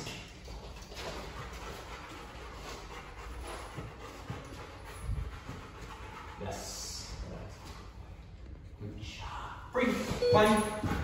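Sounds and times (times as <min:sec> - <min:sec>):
dog panting: 0:00.3 - 0:08.2, 0:10.4 - 0:11.0.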